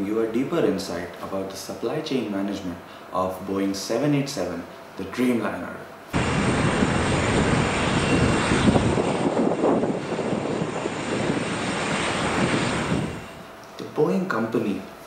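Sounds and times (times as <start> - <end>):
jet engines at high thrust: 6.1 - 13.6.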